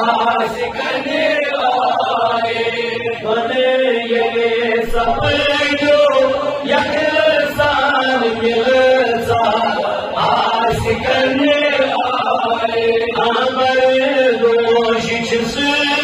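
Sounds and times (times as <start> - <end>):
man chanting into a microphone: 0.0 - 16.0.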